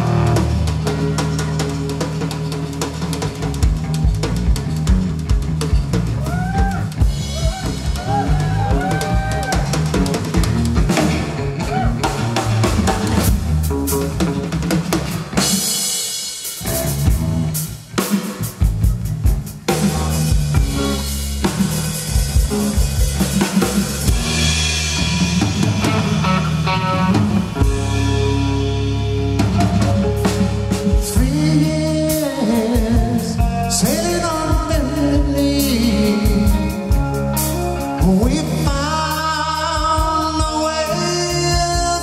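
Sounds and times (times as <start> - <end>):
bass guitar: 0.0 - 42.0
drum kit playing: 0.0 - 42.0
electric guitar: 0.0 - 42.0.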